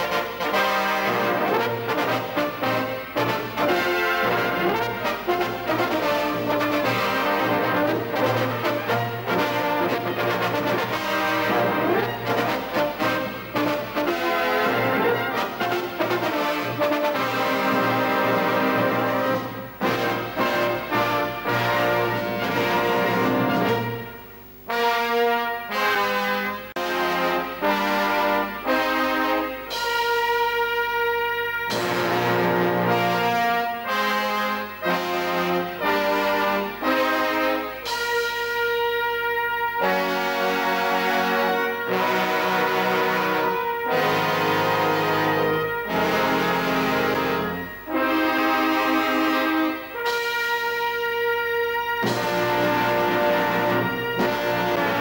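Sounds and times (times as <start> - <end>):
brass band playing: 0.0 - 55.0.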